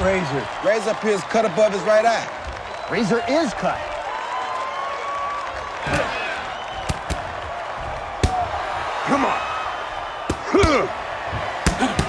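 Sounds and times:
arena crowd noise: 0:00.0 - 0:12.0
people shouting: 0:05.7 - 0:12.0
boxing glove punches thudding: 0:06.8 - 0:07.2, 0:08.1 - 0:08.6, 0:10.2 - 0:12.0.

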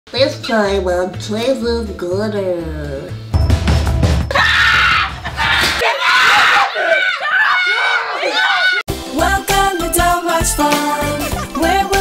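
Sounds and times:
background music: 0:00.1 - 0:05.8, 0:08.9 - 0:12.0
excited screaming: 0:04.3 - 0:08.9.

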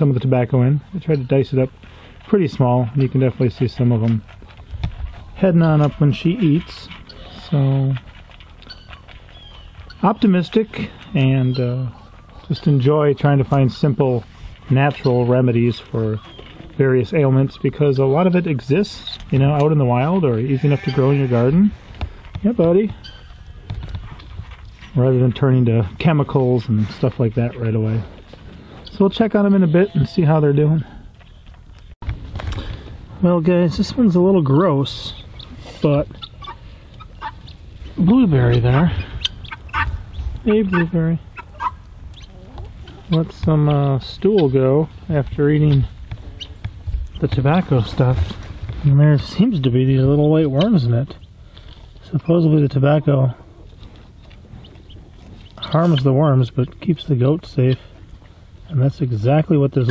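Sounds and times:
chickens clucking: 0:00.0 - 0:31.6, 0:33.4 - 0:59.9
goat chewing dry feed: 0:01.4 - 0:11.2.

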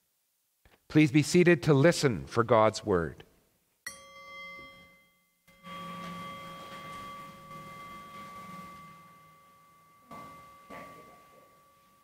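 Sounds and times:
clear ringing tone: 0:03.9 - 0:12.0.

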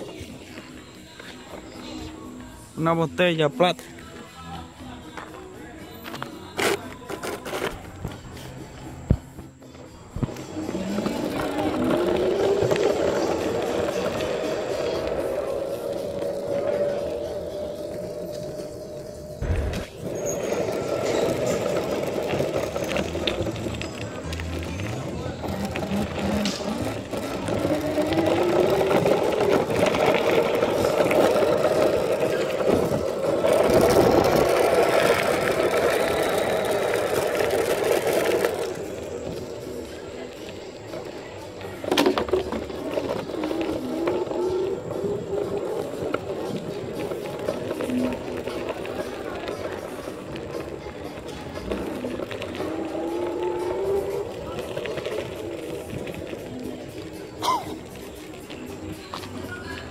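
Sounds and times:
electric scooter motor whining: 0:10.0 - 0:59.8.

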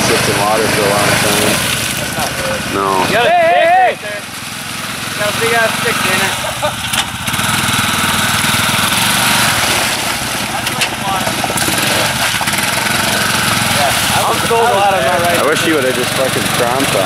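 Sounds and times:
quad engine revving: 0:00.0 - 0:17.0.

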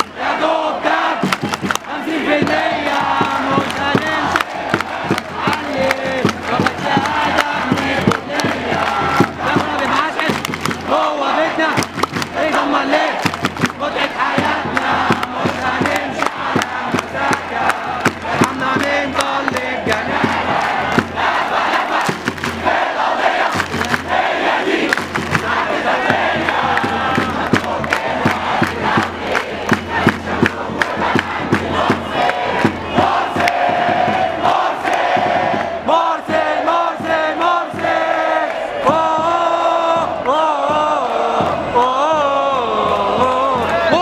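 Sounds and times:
crowd chanting in unison: 0:00.0 - 0:44.0
sharp claps: 0:01.2 - 0:22.8, 0:23.4 - 0:24.2, 0:24.8 - 0:36.4.

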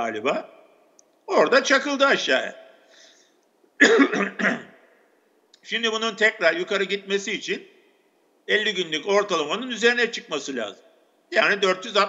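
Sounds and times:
man coughing: 0:03.8 - 0:04.8.

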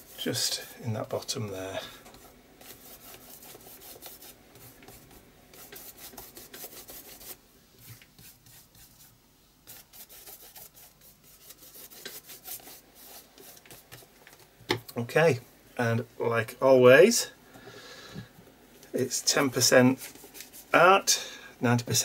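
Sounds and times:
tool scraping on paper: 0:02.1 - 0:14.1.

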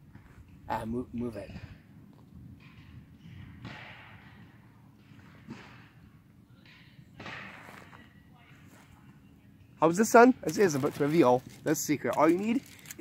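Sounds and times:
pine cones rustling: 0:10.4 - 0:13.0.

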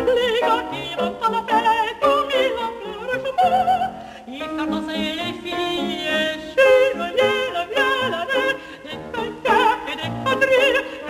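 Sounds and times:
piano accompaniment: 0:00.0 - 0:11.0
woman singing with vibrato: 0:00.0 - 0:11.0.

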